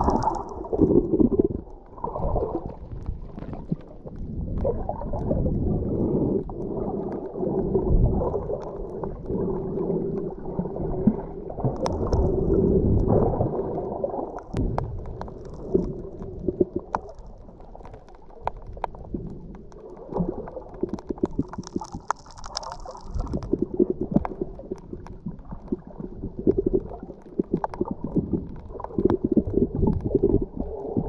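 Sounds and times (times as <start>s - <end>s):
muffled underwater rush: 0.0s - 31.0s
sharp clicks and crackles: 0.0s - 31.0s.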